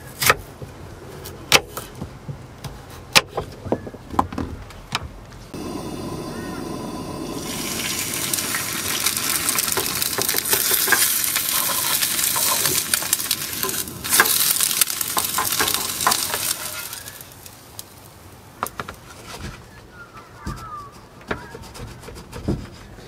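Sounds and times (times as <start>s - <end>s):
egg sizzling in frying pan: 5.6s - 18.2s.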